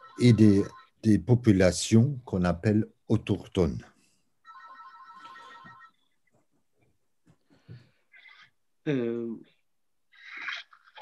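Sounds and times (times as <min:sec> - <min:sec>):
faint phone ringtone: 0:00.0 - 0:01.1, 0:04.4 - 0:06.2.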